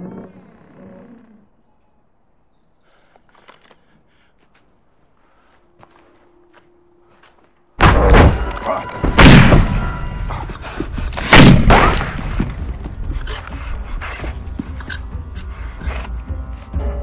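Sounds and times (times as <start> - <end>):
film score: 0.0 - 17.0
gunshots with booming echo: 7.8 - 10.2, 11.1 - 12.6
bangs and thuds: 7.8 - 13.0.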